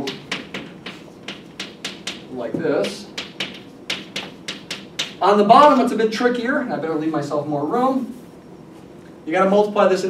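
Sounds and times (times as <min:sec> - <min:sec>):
chalk tapping on a blackboard: 0:00.0 - 0:05.2.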